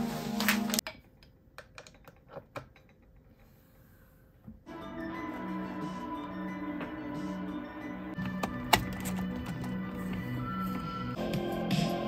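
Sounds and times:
background music: 0:00.0 - 0:00.8, 0:04.7 - 0:12.0.

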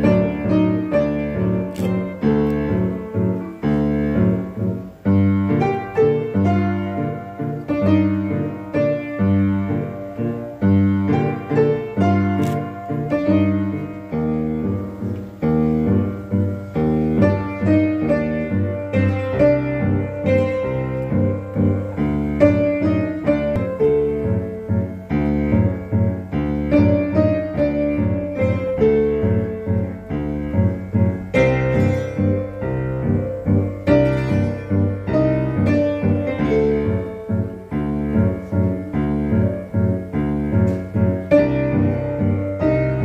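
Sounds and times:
upright piano playing: 0:00.0 - 0:43.0.

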